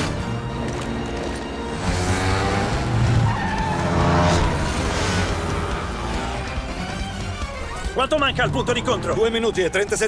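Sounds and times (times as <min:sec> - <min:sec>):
film music: 0:00.0 - 0:10.0
tyres skidding: 0:00.0 - 0:10.0
motor scooter engines revving: 0:01.4 - 0:07.0.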